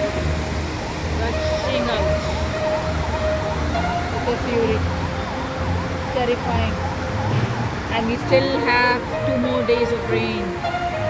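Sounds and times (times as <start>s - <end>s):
siren wailing: 0.0s - 11.0s
water rushing over weir: 0.0s - 11.0s.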